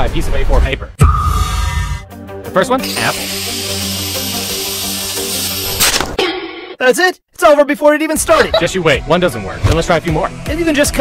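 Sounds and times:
angle grinder humming: 2.8s - 5.8s
loud crack of disc breaking: 5.7s - 6.2s.

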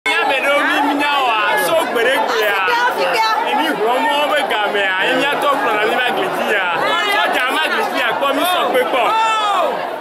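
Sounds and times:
people chattering: 0.1s - 10.0s.

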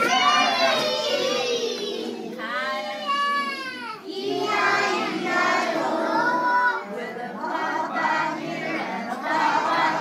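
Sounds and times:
children singing together: 0.0s - 10.0s.

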